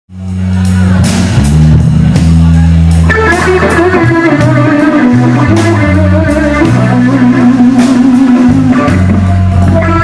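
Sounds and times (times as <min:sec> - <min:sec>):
electric bass low notes: 0:00.1 - 0:10.0
electric guitar line: 0:00.1 - 0:10.0.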